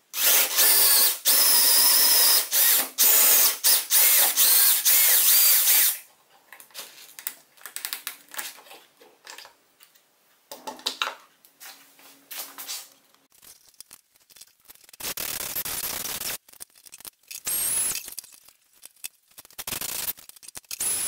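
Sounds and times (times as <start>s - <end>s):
cordless drill boring wood: 0.2s - 6.0s
clicks and knocks of handling: 6.3s - 11.3s.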